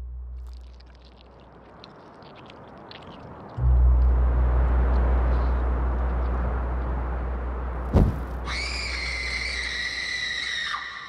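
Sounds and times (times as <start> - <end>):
low drone: 3.6 - 10.2
sudden hit: 7.9 - 8.5.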